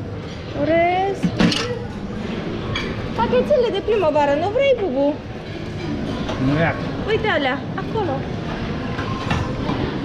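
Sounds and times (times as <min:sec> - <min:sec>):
utensils clinking on dishes: 0:01.2 - 0:02.0, 0:02.6 - 0:03.2.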